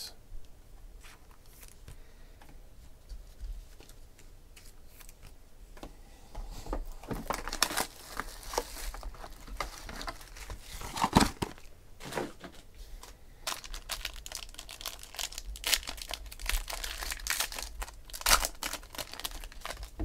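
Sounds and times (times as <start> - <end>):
foil wrapper crinkling: 7.0 - 11.7, 13.4 - 20.0
foil wrapper tearing: 7.2 - 11.7, 13.5 - 20.0.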